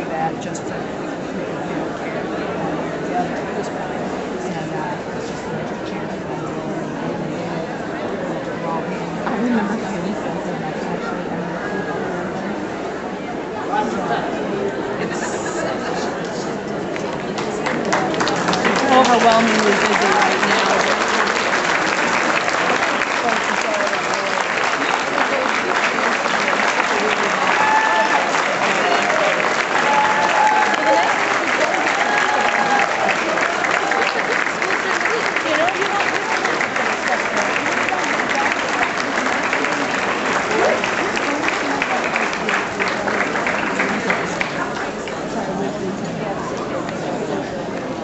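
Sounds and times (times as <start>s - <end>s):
audience applauding: 16.9s - 45.7s.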